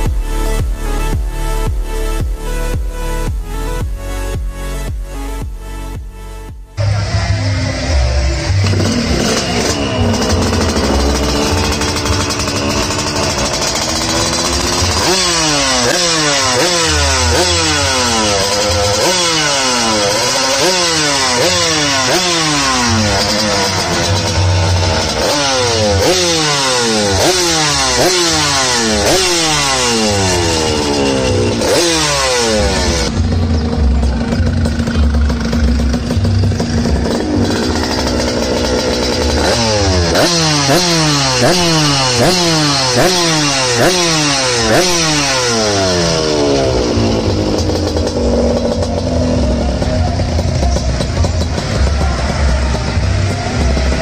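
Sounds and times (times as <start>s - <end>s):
engine idling: 0.0s - 54.0s
two-stroke engine revving: 6.8s - 54.0s.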